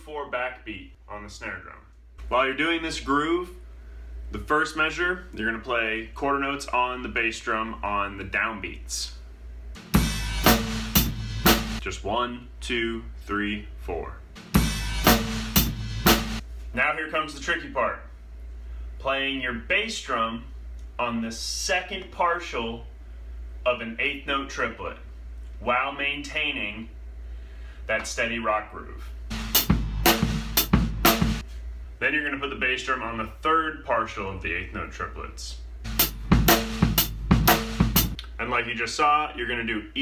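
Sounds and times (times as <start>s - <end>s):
drum kit rock groove: 9.7s - 11.9s, 14.3s - 16.4s, 29.3s - 31.5s, 35.8s - 38.2s.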